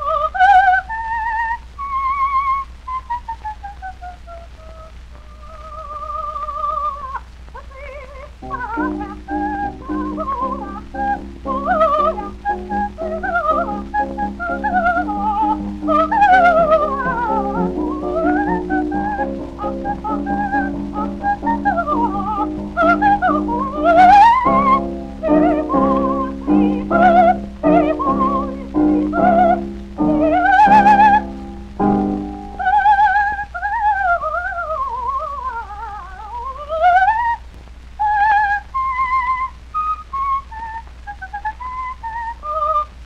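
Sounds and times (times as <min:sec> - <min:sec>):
low recording hum: 0:00.0 - 0:43.0
soprano singing with vibrato: 0:00.0 - 0:43.0.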